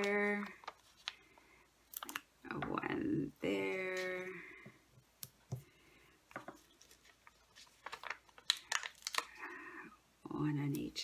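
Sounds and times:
paper clicks and rustles: 0.0 - 1.3, 6.4 - 9.4.

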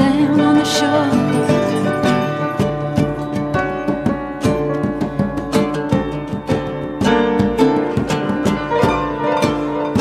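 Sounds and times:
conga hand drums: 0.0 - 10.0
piano: 0.0 - 10.0
plucked acoustic strings: 0.0 - 10.0.

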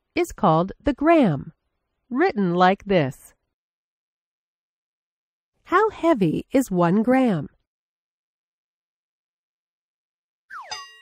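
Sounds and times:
bright metallic ding: 10.6 - 11.0.

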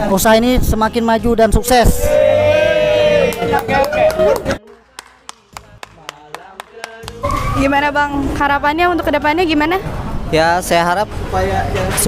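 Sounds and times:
person clapping: 3.3 - 7.2.

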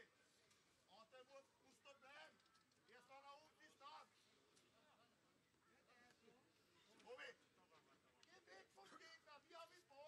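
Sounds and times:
quiet open-air ambience: 0.0 - 10.0.

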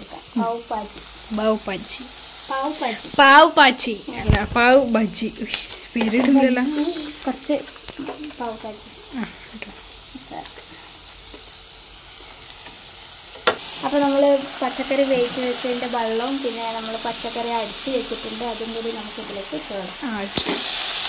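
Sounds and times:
voices: 0.0 - 10.6, 13.8 - 20.4
vegetables sizzling in oil: 0.0 - 21.0.

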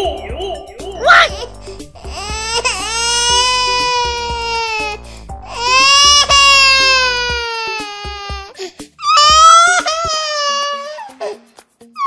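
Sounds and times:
background music with steady beat: 0.0 - 12.0
long crying wails: 1.0 - 11.2.

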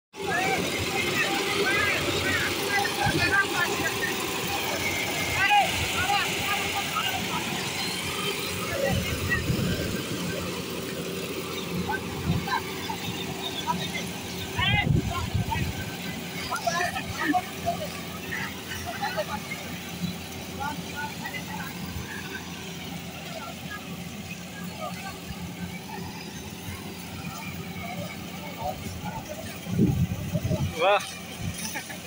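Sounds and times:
combine harvester engine humming: 0.2 - 32.0
men's voices: 0.2 - 32.0.

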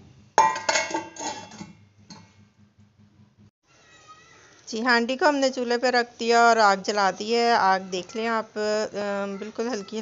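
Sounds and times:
metal lid clanking on pot: 0.4 - 2.3.

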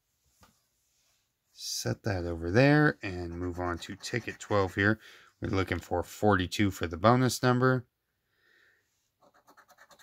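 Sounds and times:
coin scratching lottery ticket: 3.1 - 4.6, 9.2 - 10.0.

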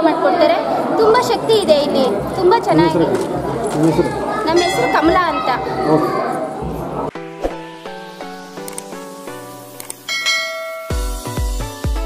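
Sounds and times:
bell-like notification chime: 4.6 - 5.5, 10.1 - 11.2
electronic music with bass beat: 7.6 - 12.0.

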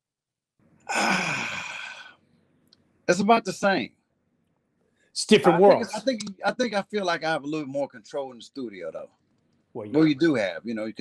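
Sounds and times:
man sighing: 0.9 - 2.1.

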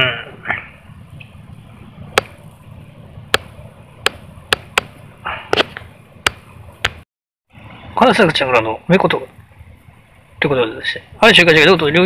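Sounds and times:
low steady hum: 0.0 - 7.0.

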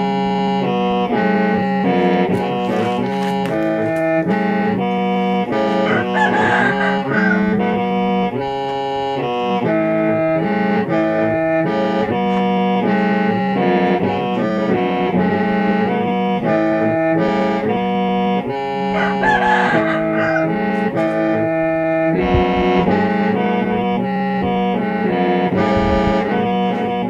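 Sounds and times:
bamboo mouth organ playing: 0.0 - 27.0.

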